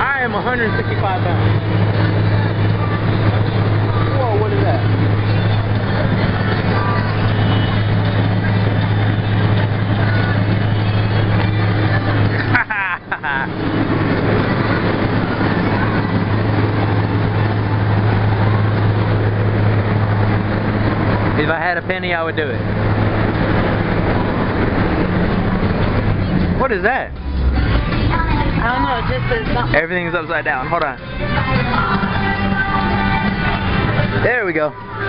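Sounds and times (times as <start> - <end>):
faint voices: 0.0 - 35.0
loud machine hum: 0.0 - 35.0
rushing noise: 0.0 - 35.0.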